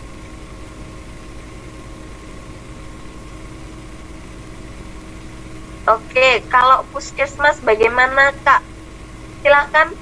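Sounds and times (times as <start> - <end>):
background hum and hiss: 0.0 - 10.0
faint steady tones: 1.2 - 10.0.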